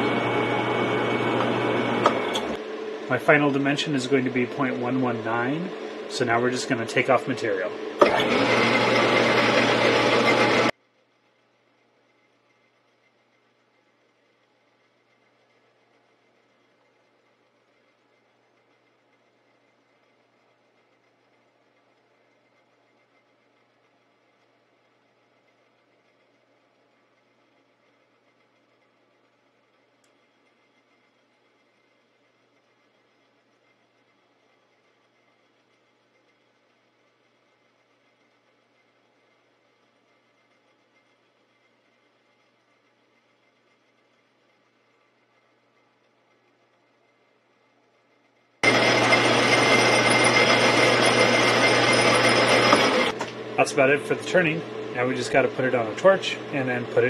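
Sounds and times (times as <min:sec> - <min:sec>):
metal lathe running: 0:00.0 - 0:10.7, 0:48.6 - 0:57.0.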